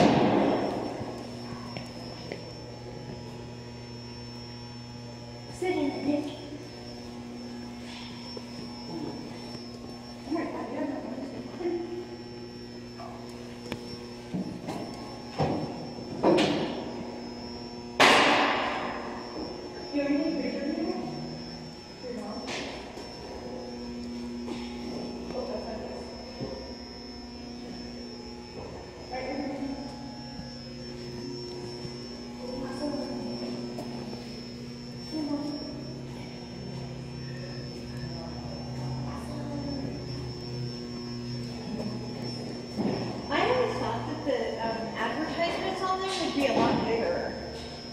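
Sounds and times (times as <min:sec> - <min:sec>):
steady electrical hum: 0:00.0 - 0:47.9.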